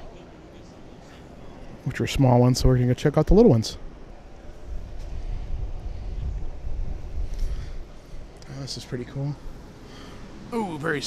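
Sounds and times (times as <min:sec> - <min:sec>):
wind buffeting microphone: 0:04.4 - 0:08.4.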